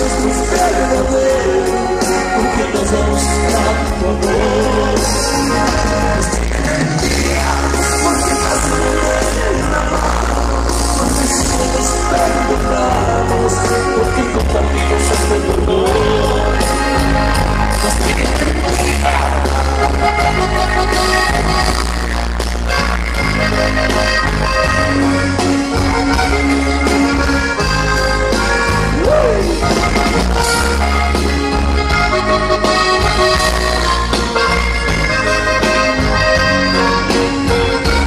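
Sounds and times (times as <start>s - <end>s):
person singing: 0.0s - 21.1s, 28.8s - 29.9s
heavy steady bass line: 0.0s - 38.0s
norteno band music: 0.0s - 38.0s.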